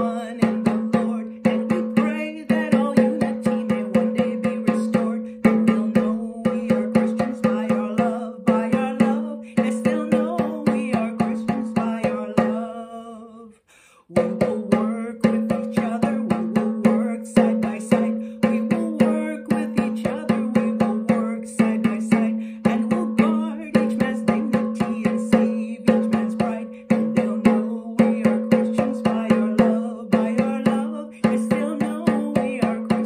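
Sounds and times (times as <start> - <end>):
hand drum beating: 0.0 - 12.8, 14.1 - 33.0
woman singing: 0.0 - 33.0.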